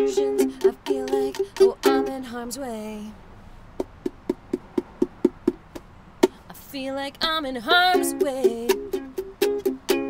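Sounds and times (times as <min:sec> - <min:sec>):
knocks on ukulele body: 0:03.8 - 0:05.9.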